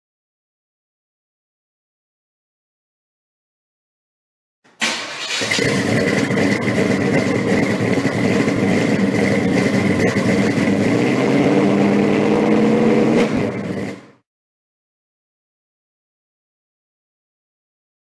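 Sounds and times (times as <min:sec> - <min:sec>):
car engine starting and running: 0:04.7 - 0:14.2.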